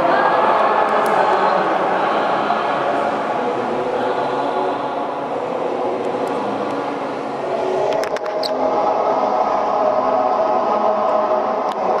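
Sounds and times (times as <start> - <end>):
crowd chanting: 0.0 - 12.0.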